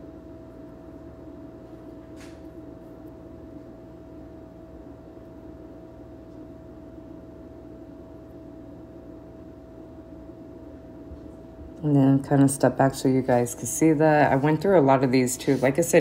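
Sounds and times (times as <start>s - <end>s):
shop interior hum: 0.0s - 16.0s.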